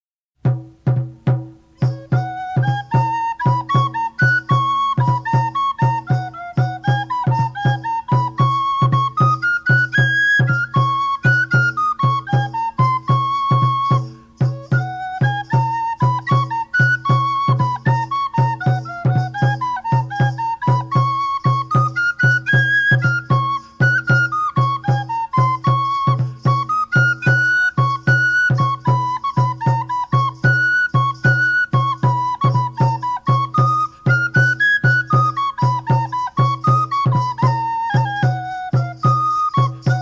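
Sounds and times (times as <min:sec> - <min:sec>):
steady drumbeat: 0:00.4 - 0:02.8, 0:23.0 - 0:26.7, 0:35.1 - 0:40.0
flute-like melody: 0:01.2 - 0:40.0.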